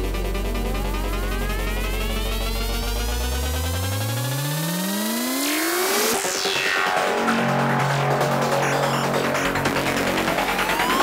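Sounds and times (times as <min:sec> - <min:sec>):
synthesizer sweep rising in pitch: 0:00.0 - 0:11.0.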